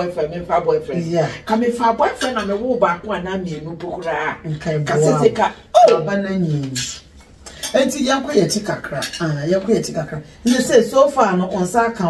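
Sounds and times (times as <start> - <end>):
woman talking: 0.0 - 7.0.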